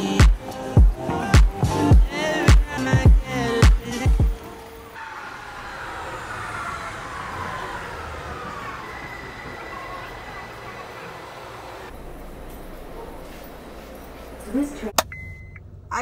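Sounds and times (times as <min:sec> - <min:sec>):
electric train motor whine: 0:03.3 - 0:14.8
low rumble inside train car: 0:04.6 - 0:16.0.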